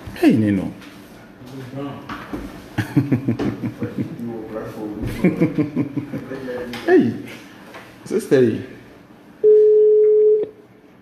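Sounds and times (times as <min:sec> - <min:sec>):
telephone ringback beep: 0:09.4 - 0:10.5.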